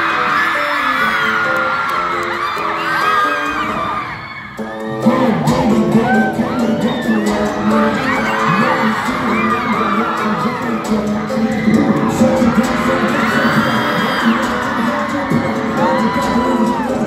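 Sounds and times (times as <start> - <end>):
audience cheering: 0.0 - 17.0
pop song over sound system: 0.0 - 17.0.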